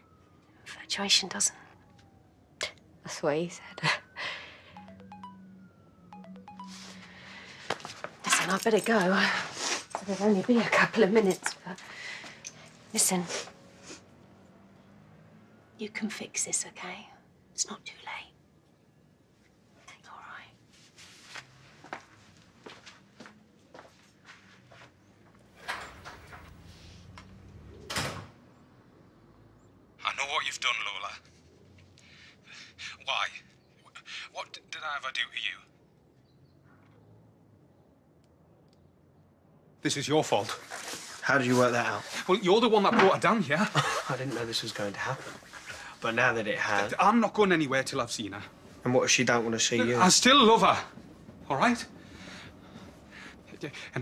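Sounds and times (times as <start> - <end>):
electronic ringtone: 3.6 - 8.0.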